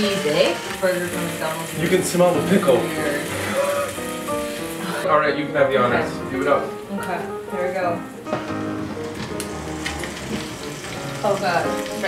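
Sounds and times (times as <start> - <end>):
food sizzling in waffle maker: 0.0 - 5.0, 5.6 - 12.0
soft background music: 0.0 - 12.0.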